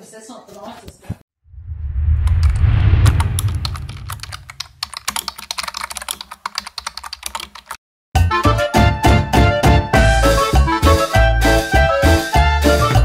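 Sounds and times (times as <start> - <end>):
low rumble: 1.4 - 4.9
keyboard typing clicks: 3.4 - 7.8.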